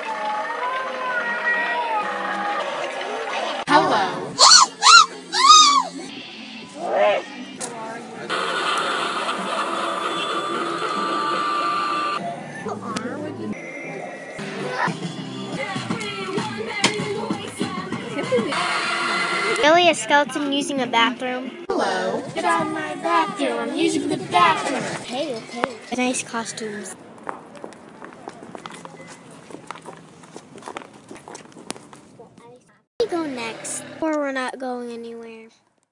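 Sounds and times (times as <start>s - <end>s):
mechanical whirring with high tone: 8.3s - 12.2s
quick footsteps on tiled floor: 27.2s - 32.4s.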